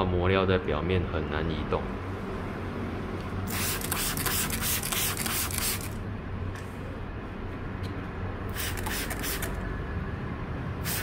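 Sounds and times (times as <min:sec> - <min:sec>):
spray bottle spraying water: 0:03.5 - 0:06.0, 0:08.5 - 0:09.6.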